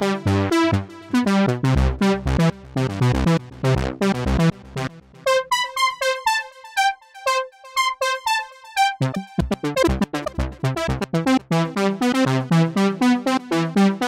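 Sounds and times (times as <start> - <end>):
plucky synthesizer melody: 7.3 - 12.1.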